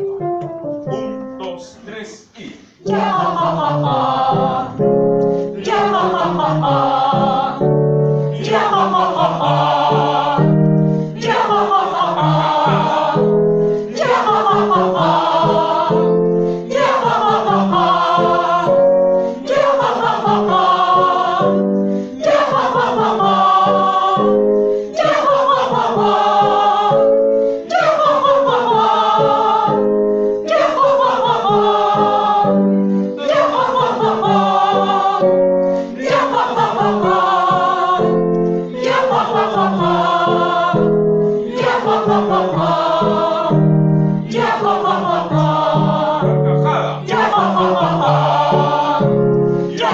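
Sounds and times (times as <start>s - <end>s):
group singing warm-up exercise: 1.5s - 49.9s
breath: 10.9s - 11.2s, 21.9s - 22.2s.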